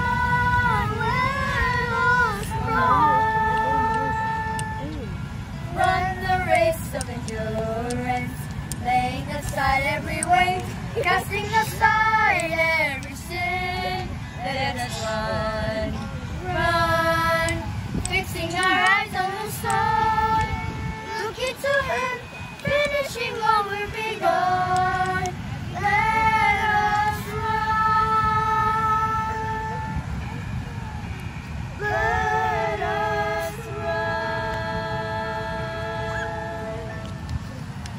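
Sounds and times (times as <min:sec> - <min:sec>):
woman and children singing: 0:00.0 - 0:30.0, 0:31.8 - 0:37.1
low background rush: 0:00.0 - 0:37.9.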